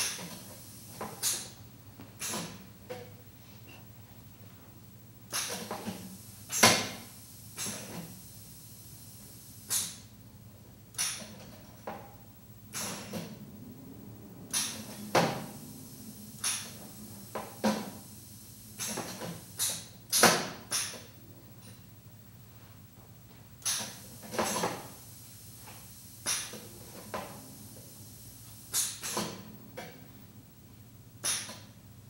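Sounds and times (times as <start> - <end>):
low steady hum: 0.0 - 32.0
sharp mechanical clicks and knocks: 10.9 - 12.0, 18.8 - 21.8, 31.2 - 31.7.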